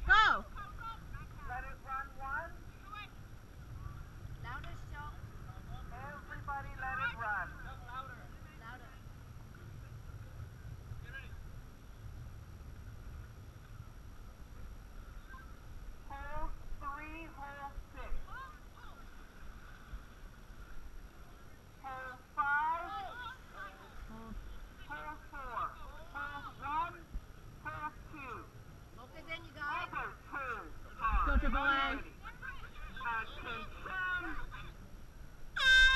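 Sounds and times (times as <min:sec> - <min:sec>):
wind and water rumble: 0:00.0 - 0:35.9.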